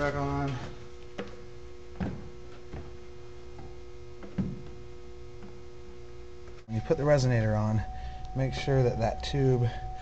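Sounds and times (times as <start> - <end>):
steady electrical hum: 0.0 - 10.0.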